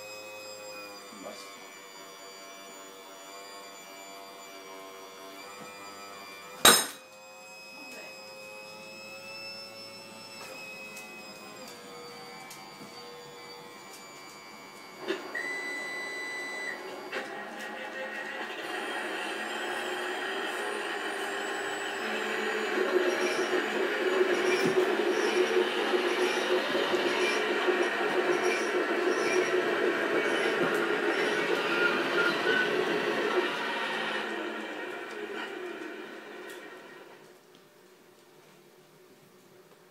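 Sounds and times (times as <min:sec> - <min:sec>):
hydraulic pump whine: 0:00.0 - 0:37.3.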